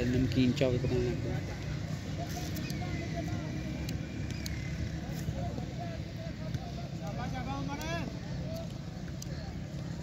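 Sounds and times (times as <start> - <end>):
distant voices: 0.0 - 10.0
faint clicks: 3.8 - 5.3, 6.4 - 10.0.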